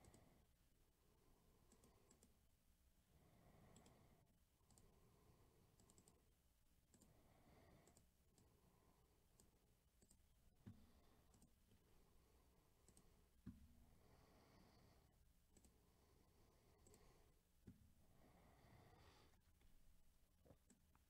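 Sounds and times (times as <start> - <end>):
computer mouse clicks: 0.0 - 0.4, 1.6 - 2.4, 3.7 - 4.0, 4.6 - 5.0, 5.7 - 6.3, 6.9 - 8.6, 9.3 - 11.6, 12.8 - 13.6, 15.5 - 15.8, 16.8 - 17.1, 20.5 - 21.0.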